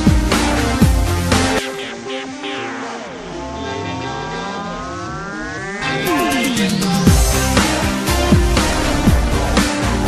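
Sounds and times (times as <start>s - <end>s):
electronic dance music synth tones: 0.0s - 10.0s.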